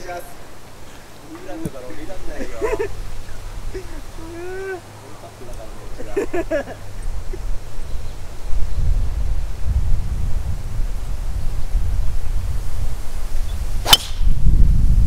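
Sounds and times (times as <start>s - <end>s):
wind rumbling on microphone: 0.0s - 15.0s
golf ball struck off tee: 13.8s - 14.4s.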